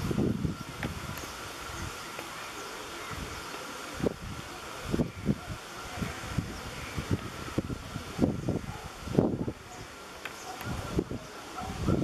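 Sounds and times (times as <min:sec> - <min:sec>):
wind buffeting microphone: 0:00.0 - 0:02.2, 0:03.0 - 0:12.0
outdoor background noise: 0:00.0 - 0:12.0.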